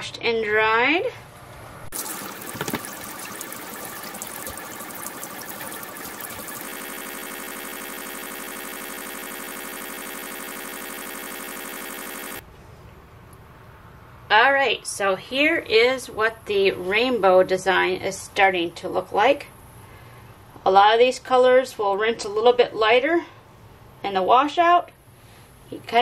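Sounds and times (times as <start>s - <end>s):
tap water running into sink: 2.0s - 5.4s
humming tone: 2.0s - 12.4s.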